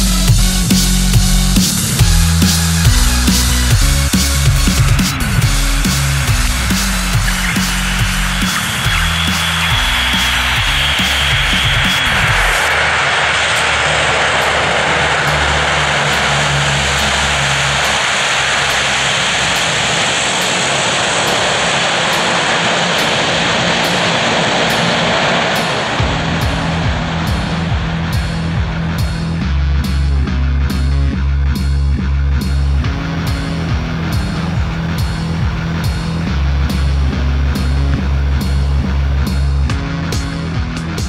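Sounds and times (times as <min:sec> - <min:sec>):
background music: 0:00.0 - 0:21.4, 0:23.0 - 0:41.0
turboprop engines roaring: 0:00.0 - 0:41.0.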